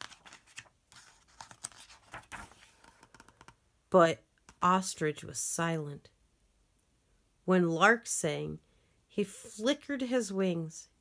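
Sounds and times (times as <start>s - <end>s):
book page turning: 0.0s - 3.5s.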